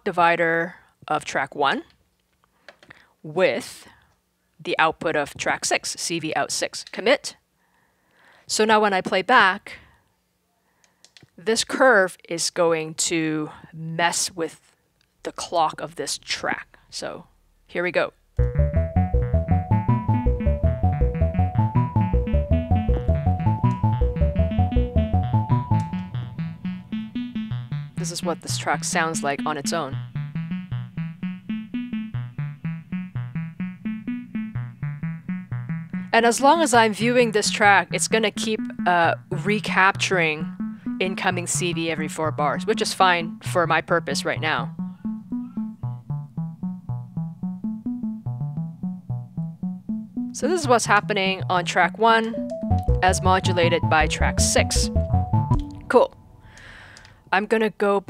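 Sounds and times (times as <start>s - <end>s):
synthesizer upper melody: 18.4s - 56.5s
lower plucked synth notes: 18.4s - 56.6s.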